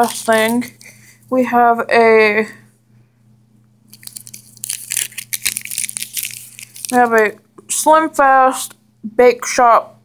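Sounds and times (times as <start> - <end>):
plastic wrapper crinkling: 0.0 - 1.0, 3.9 - 7.4.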